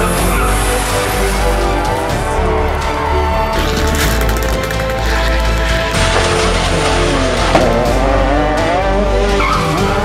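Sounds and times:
rally car engine revving: 0:03.3 - 0:10.0
tyre squeal: 0:09.3 - 0:09.9.

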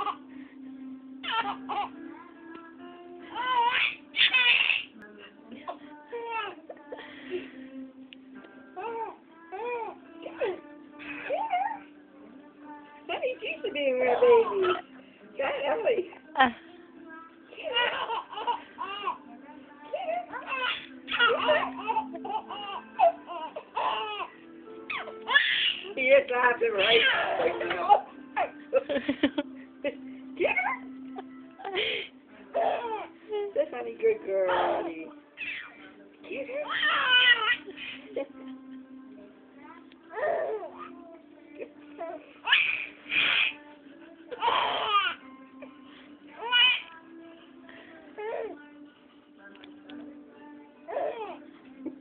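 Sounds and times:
baby squealing with laughter: 0:01.2 - 0:01.9, 0:03.4 - 0:04.9, 0:24.9 - 0:25.9, 0:26.8 - 0:27.5, 0:35.4 - 0:35.8, 0:36.6 - 0:37.6, 0:42.4 - 0:43.6, 0:46.4 - 0:46.9
infant laughing and squealing: 0:01.2 - 0:01.9, 0:03.4 - 0:04.9, 0:17.6 - 0:19.2, 0:20.0 - 0:24.3, 0:24.9 - 0:25.9, 0:26.8 - 0:28.5, 0:34.5 - 0:35.8, 0:36.6 - 0:37.7, 0:42.0 - 0:43.6, 0:46.4 - 0:46.9.

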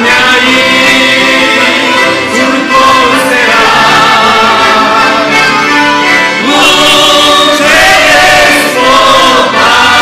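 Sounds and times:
mixed choir singing in unison: 0:00.0 - 0:10.0
piano accordions: 0:00.0 - 0:10.0.

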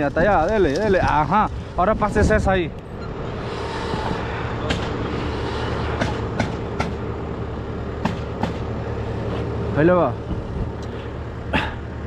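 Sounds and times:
low engine drone: 0:00.0 - 0:12.0
sharp knock: 0:06.0 - 0:07.0.

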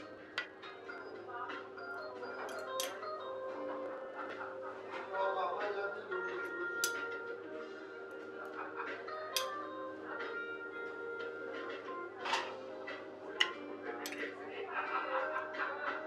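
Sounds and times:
background music: 0:00.0 - 0:16.0
metal cutlery clinking on tray and plates: 0:02.4 - 0:03.2, 0:06.4 - 0:07.2, 0:09.2 - 0:09.7, 0:12.2 - 0:12.7, 0:13.4 - 0:14.4.

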